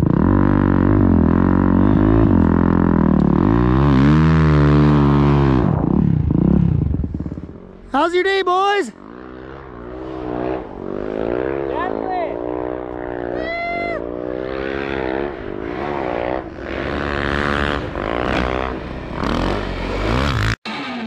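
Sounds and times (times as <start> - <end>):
snowbike engine revving: 0.0 - 21.0
short high-pitched shouts: 13.3 - 14.1.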